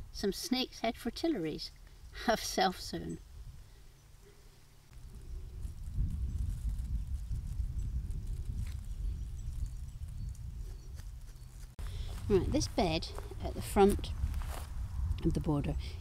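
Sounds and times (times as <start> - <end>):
wind buffeting microphone: 4.9 - 16.0.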